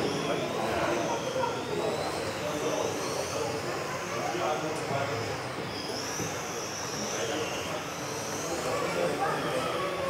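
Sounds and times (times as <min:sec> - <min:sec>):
rc car motors whining: 0:00.0 - 0:10.0.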